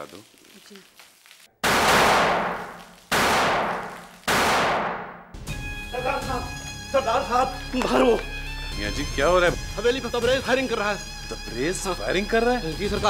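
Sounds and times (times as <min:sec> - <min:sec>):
echoing gunshots: 0:01.6 - 0:05.3.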